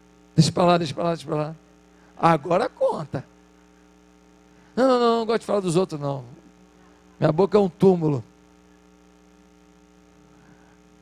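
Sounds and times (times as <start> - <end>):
faint electrical mains hum: 0.0 - 11.0.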